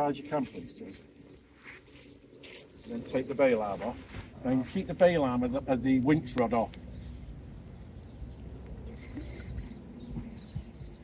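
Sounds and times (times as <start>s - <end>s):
birds chirping faintly: 0.0s - 11.0s
low outdoor rumble: 0.0s - 11.0s.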